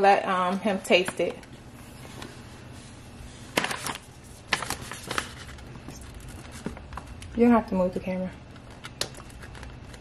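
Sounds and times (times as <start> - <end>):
plastic packaging crinkling: 3.5 - 7.4, 8.5 - 10.0.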